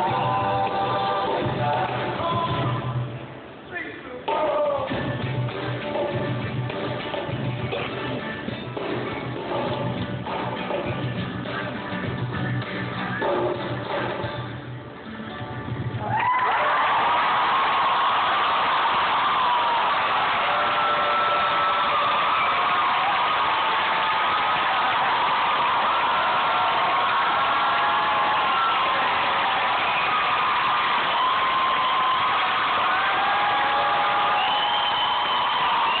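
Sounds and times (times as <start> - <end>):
audience applauding and cheering: 16.0 - 36.0
whoops and whistles: 33.4 - 36.0.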